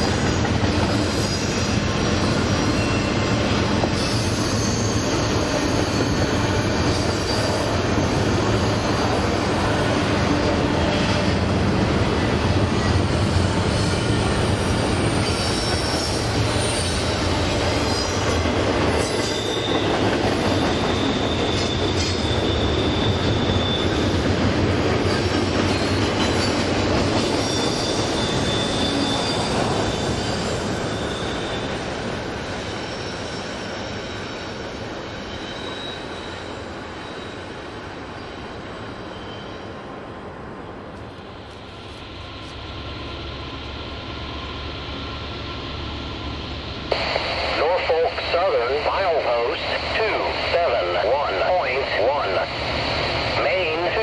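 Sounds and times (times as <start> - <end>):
high wheel squeals: 0.0 - 24.4, 25.0 - 40.0
train wheels rolling on rails: 0.0 - 48.0.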